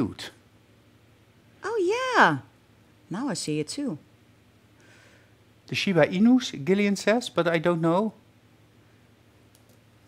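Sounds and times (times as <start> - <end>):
faint clicks: 9.5 - 9.8.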